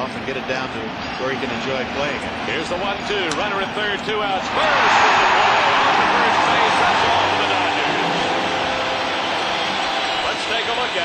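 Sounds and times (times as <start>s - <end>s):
stadium crowd cheering: 0.0s - 11.0s.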